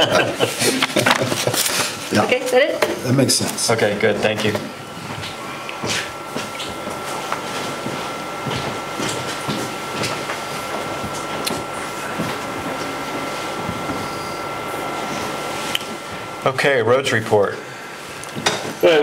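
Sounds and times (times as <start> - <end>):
steady room hum: 0.0 - 19.0
people shifting at table: 0.4 - 2.1.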